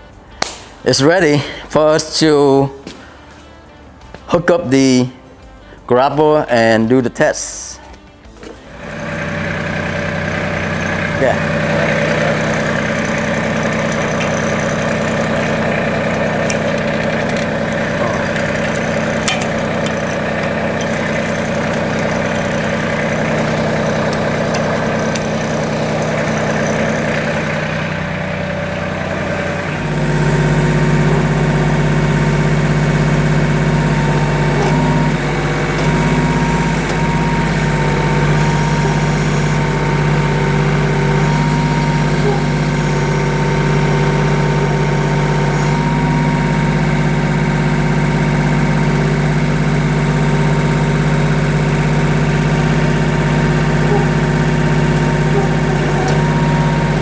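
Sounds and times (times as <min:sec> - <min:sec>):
diesel engine idling: 0:08.2 - 0:57.0
thin steady whine: 0:08.7 - 0:57.0.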